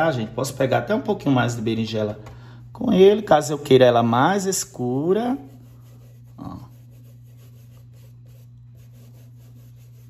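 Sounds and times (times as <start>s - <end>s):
short breath: 2.3s - 2.7s.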